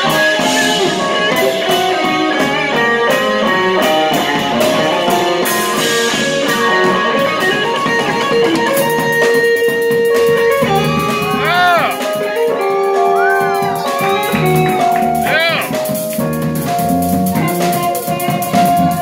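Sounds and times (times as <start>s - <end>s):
electric bass: 0.0s - 19.0s
electric guitar lines: 0.0s - 19.0s
electric keyboard: 0.0s - 19.0s.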